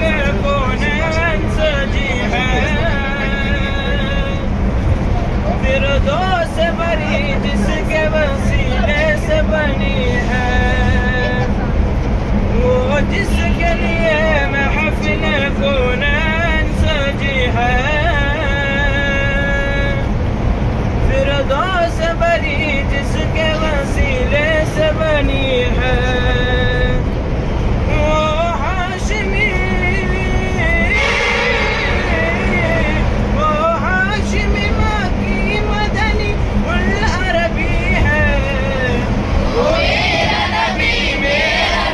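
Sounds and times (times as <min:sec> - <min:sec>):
vehicle low rumble: 0:00.0 - 0:41.9.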